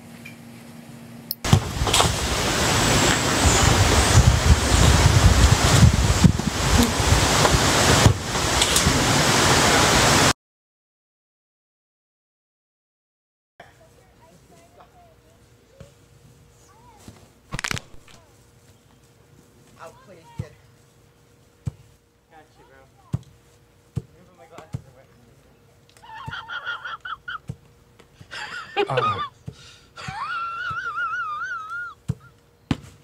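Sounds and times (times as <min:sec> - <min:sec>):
steady low hum: 0:13.6 - 0:33.0.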